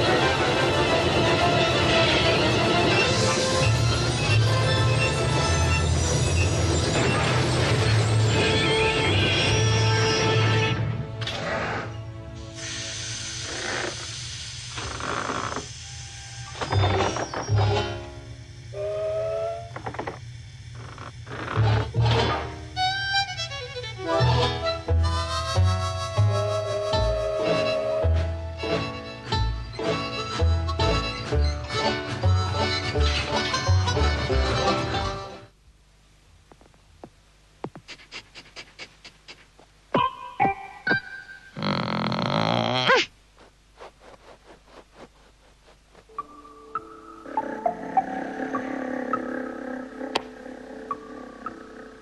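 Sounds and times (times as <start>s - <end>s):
hissing steam chuffs: 12.4s - 16.8s
low steady hum: 34.8s - 52.0s
quick run of clicks: 37.6s - 39.6s.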